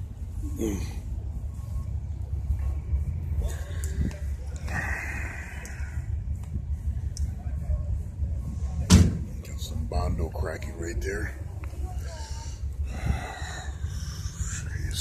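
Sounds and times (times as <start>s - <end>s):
wind rumble on microphone: 1.4s - 15.0s.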